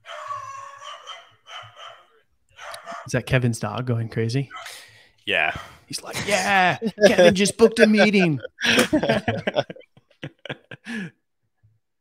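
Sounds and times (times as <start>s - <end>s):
dog howling: 0.0s - 3.1s.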